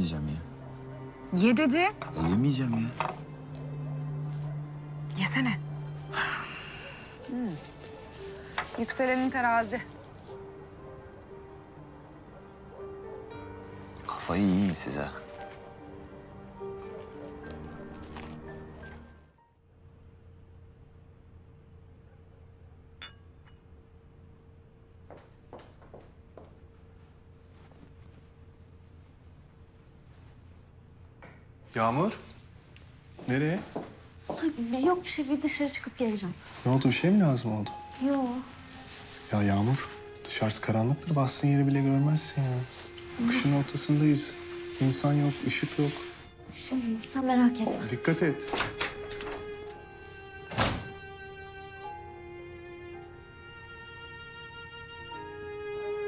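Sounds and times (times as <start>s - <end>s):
soft background music: 0.0s - 56.0s
ceramic cup clinking on stone: 23.0s - 23.7s
wooden door thudding shut: 50.5s - 51.0s.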